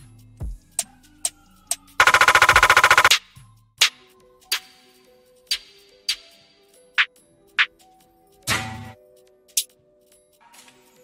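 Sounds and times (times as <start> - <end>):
fast snare roll: 2.0 - 3.2.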